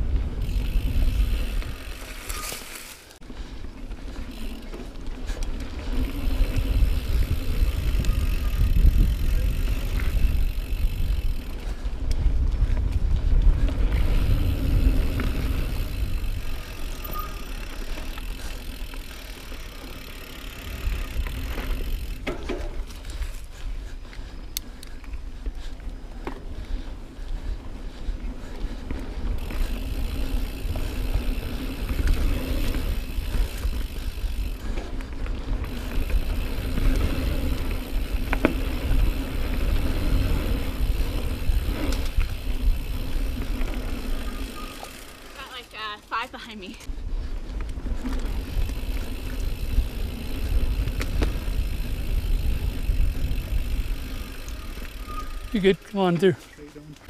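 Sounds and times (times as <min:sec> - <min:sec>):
wind rumbling on microphone: 0:00.0 - 0:02.6, 0:03.2 - 0:19.3, 0:20.0 - 0:44.8, 0:46.8 - 0:55.5
bike rattling: 0:00.0 - 0:57.0
mountain bike riding noise: 0:00.0 - 0:57.0.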